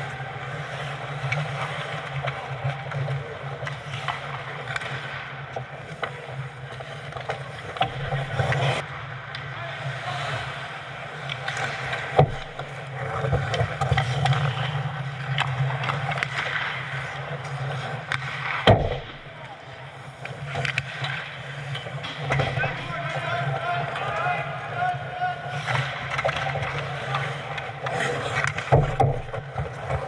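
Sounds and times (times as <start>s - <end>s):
skates scraping on ice: 0.0s - 30.0s
hockey sticks clicking: 0.1s - 9.6s, 11.0s - 30.0s.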